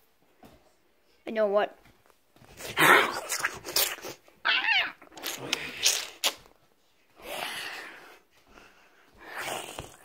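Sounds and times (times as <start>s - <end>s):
shrill wavering cry: 4.4s - 5.0s.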